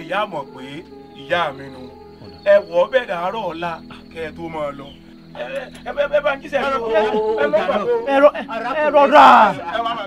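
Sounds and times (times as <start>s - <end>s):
crickets chirping: 0.0s - 10.0s
man speaking: 0.0s - 10.0s.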